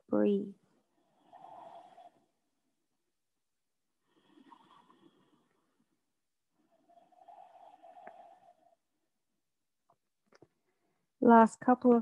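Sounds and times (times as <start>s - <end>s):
faint slow breaths: 0.8s - 2.5s, 3.8s - 9.2s.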